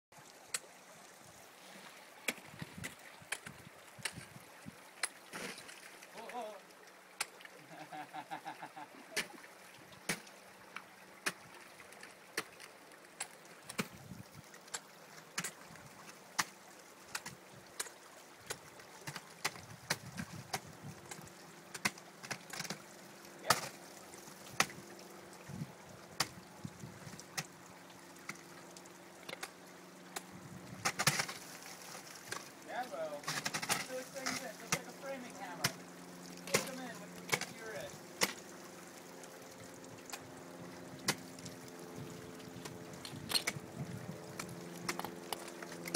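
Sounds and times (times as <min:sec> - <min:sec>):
ice axes chopping into ice: 0:30.8 - 0:35.8.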